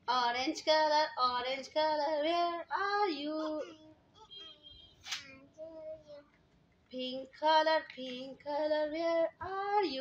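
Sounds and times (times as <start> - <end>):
soft faint singing voice: 0.1 - 10.0.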